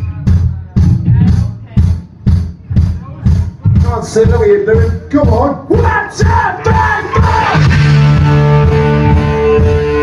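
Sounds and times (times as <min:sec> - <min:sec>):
drums pounding kick and snare: 0:00.0 - 0:10.0
punk rock band playing: 0:00.0 - 0:10.0.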